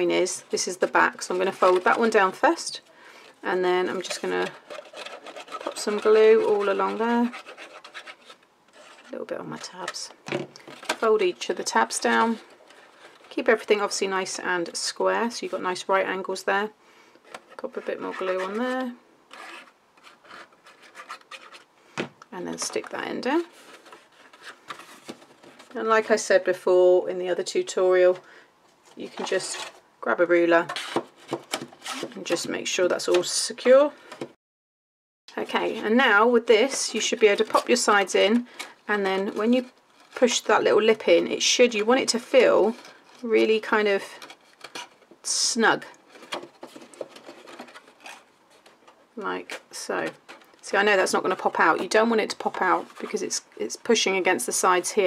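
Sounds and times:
cardstock rustling and crackling: 0:00.0 - 0:02.9, 0:22.5 - 0:25.8, 0:46.0 - 0:53.2
small taps and scrapes: 0:45.9 - 0:50.6.

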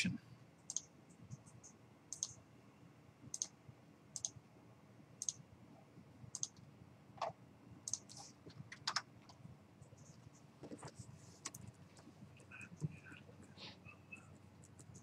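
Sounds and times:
computer mouse clicks: 0:00.6 - 0:02.4, 0:03.3 - 0:03.6, 0:04.2 - 0:04.4, 0:05.2 - 0:05.4, 0:06.3 - 0:06.6, 0:07.2 - 0:09.1.

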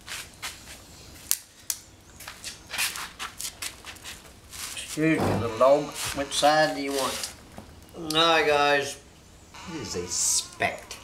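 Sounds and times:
footsteps: 0:02.2 - 0:07.7.

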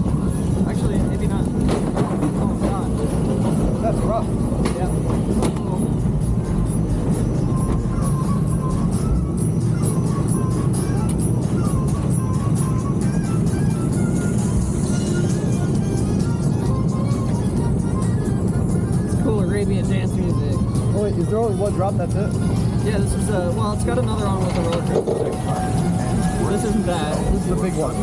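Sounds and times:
coaster lift rumble: 0:00.0 - 0:20.9, 0:22.4 - 0:28.0
music playing: 0:00.0 - 0:28.0.

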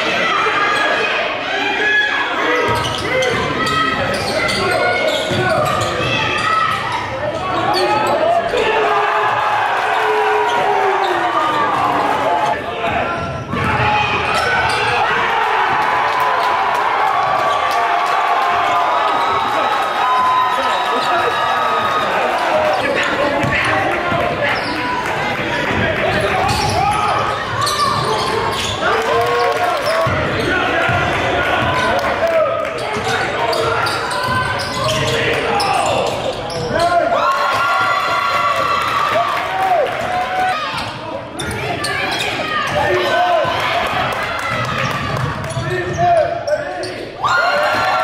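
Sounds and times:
court noise: 0:00.0 - 0:48.0.

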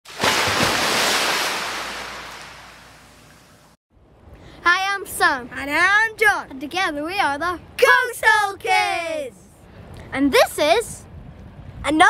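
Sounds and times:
wave breaking and washing back: 0:00.1 - 0:03.8.

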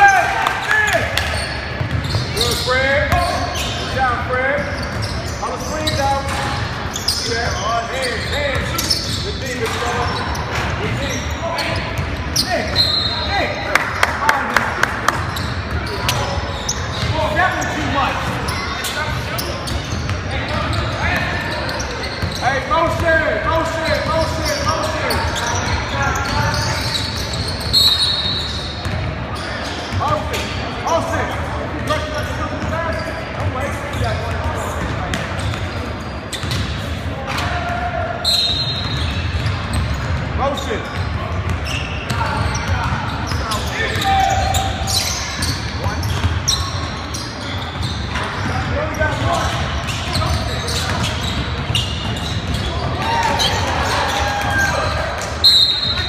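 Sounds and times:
players and spectators calling out: 0:00.0 - 0:56.0
short high squeaks: 0:04.6 - 0:09.3.

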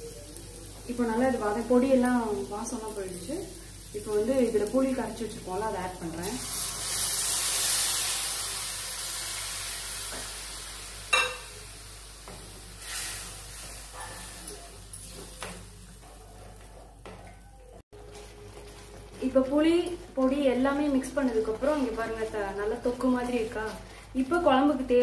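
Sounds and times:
frying pan sizzling: 0:00.0 - 0:16.1, 0:18.0 - 0:25.0.

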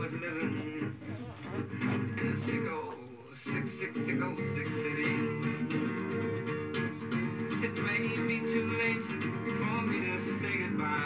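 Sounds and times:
guitar accompaniment: 0:00.0 - 0:11.0
person singing: 0:00.0 - 0:11.0.

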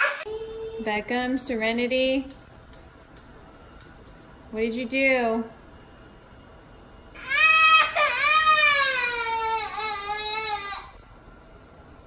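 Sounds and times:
toddler crying: 0:07.2 - 0:11.0.

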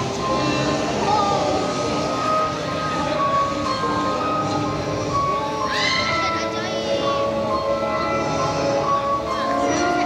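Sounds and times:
slow melody with full backing: 0:00.0 - 0:10.0.

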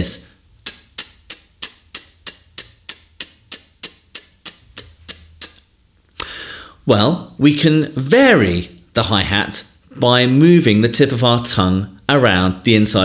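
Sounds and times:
beatboxed hi-hat tongue clicks: 0:00.6 - 0:06.4
short breath: 0:06.2 - 0:06.8.

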